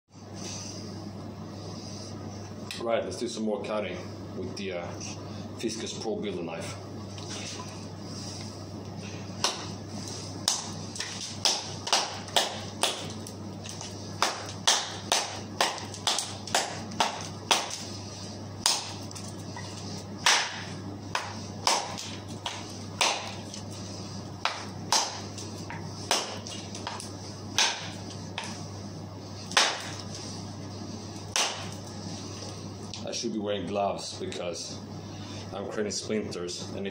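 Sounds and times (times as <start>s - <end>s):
steady low hum: 0.1s - 36.9s
knife chopping wood: 27.6s - 28.5s, 29.5s - 30.0s.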